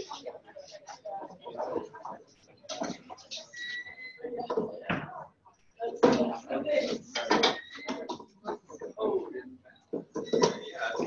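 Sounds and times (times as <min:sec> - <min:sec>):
indistinct low voices talking: 0:00.0 - 0:11.0.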